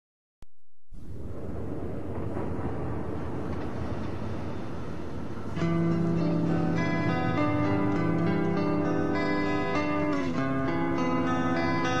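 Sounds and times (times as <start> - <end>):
low rumbling noise: 0.9 - 11.3.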